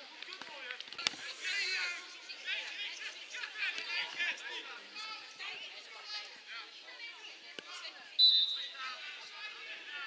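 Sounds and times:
players' voices: 0:00.0 - 0:10.0
referee's whistle blast: 0:08.2 - 0:08.8.

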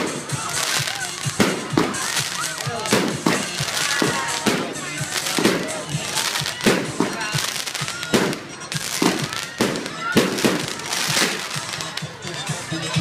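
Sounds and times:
fireworks bursting with loud bangs: 0:00.0 - 0:12.6.

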